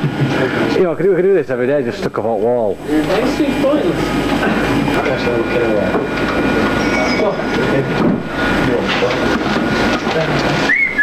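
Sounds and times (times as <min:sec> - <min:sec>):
loud steady office background noise: 0:00.0 - 0:11.0
indistinct voices: 0:02.0 - 0:11.0.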